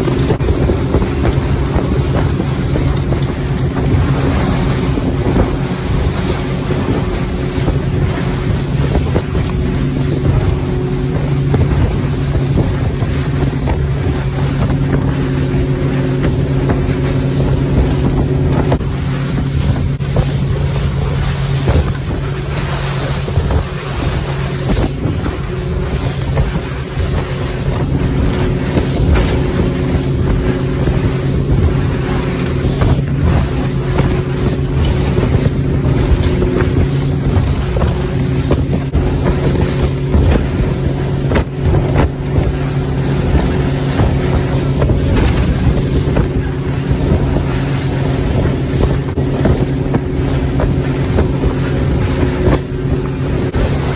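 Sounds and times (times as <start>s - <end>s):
motorboat engine running: 0.0s - 53.9s
water rushing off hull: 0.0s - 53.9s
wind buffeting microphone: 0.0s - 53.9s.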